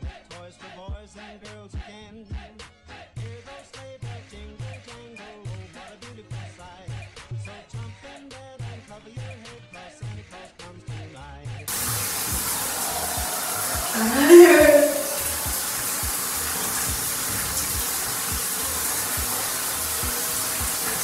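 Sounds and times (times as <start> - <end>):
shower water pouring: 11.7 - 21.0
woman's rising vocal sound: 12.6 - 15.5.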